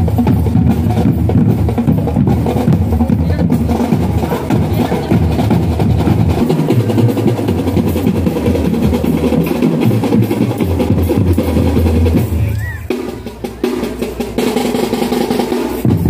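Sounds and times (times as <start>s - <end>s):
bass drums: 0.0s - 16.0s
snare drums: 0.0s - 16.0s.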